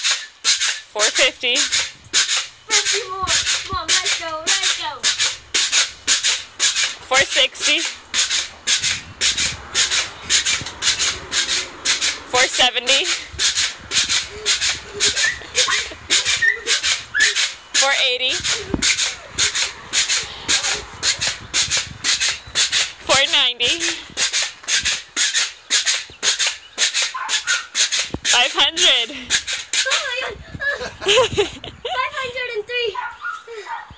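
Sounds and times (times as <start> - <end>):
pogo stick bouncing on concrete: 0.0 - 32.5.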